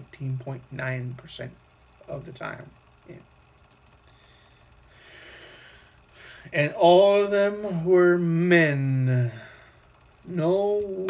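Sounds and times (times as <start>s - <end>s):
faint low hum: 0.0s - 11.0s
man breathing: 4.0s - 6.6s, 9.3s - 10.0s.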